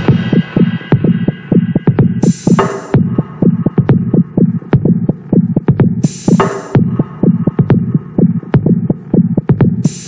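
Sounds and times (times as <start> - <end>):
throbbing synth bassline: 0.0 - 10.0.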